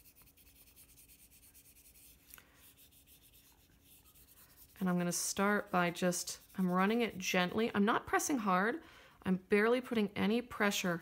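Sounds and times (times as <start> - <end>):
eraser rubbing on paper: 0.0 - 7.6.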